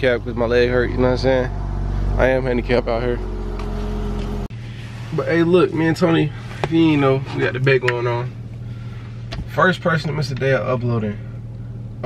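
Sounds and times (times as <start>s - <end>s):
car engine idling: 0.0s - 12.0s
low hum: 0.0s - 12.0s.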